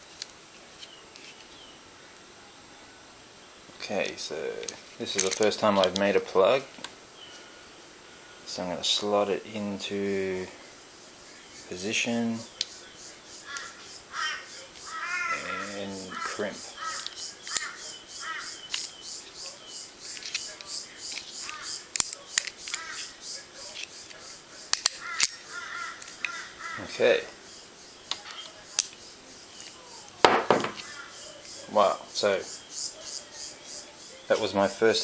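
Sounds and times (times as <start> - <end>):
bird calling: 10.2 - 35.0.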